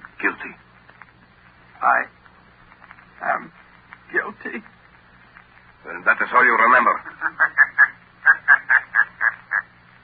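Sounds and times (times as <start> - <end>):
man laughing: 6.9 - 9.7.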